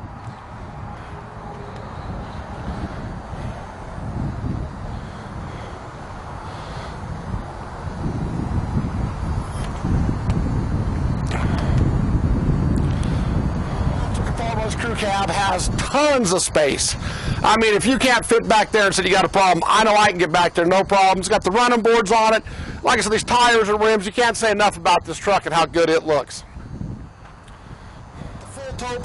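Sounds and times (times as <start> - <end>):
wind rumbling on microphone: 0.0 - 29.0.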